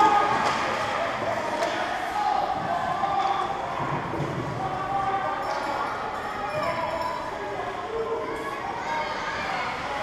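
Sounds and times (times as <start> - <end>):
distant shouts echoing in rink: 0.0 - 10.0.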